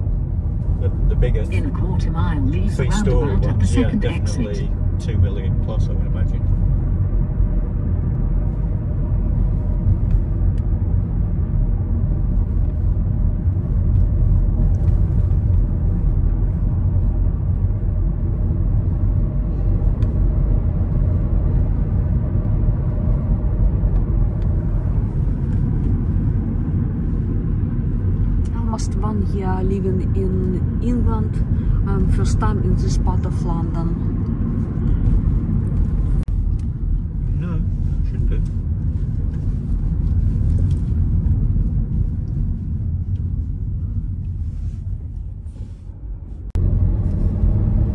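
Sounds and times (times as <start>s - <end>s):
car interior engine and tyre rumble: 0.0s - 47.9s
faint voices: 1.1s - 5.3s.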